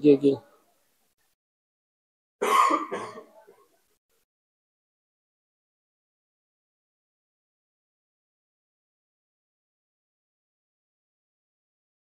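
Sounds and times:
man clearing his throat: 2.4s - 3.4s.

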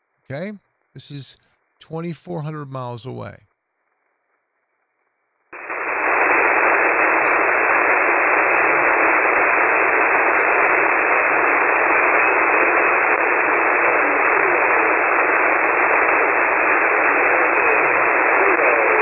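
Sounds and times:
shortwave radio static hiss: 0.3s - 3.4s, 5.6s - 19.0s
weak radio voice: 0.3s - 3.4s, 8.3s - 19.0s.

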